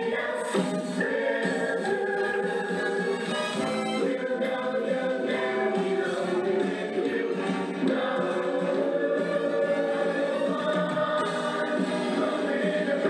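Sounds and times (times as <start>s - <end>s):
choir singing held notes: 0.0s - 13.0s.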